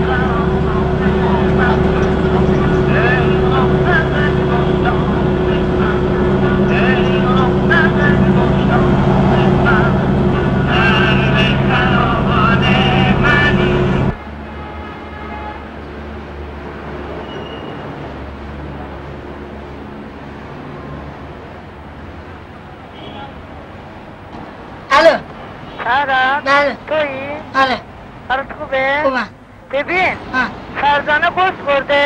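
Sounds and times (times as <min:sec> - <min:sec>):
passengers' voices: 0:00.0 - 0:14.2, 0:16.6 - 0:32.0
bus engine humming: 0:00.0 - 0:32.0
street background: 0:00.0 - 0:32.0.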